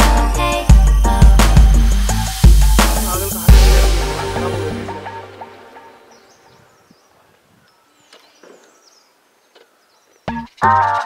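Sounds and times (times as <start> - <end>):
background music: 0.0 - 6.7, 10.3 - 11.0.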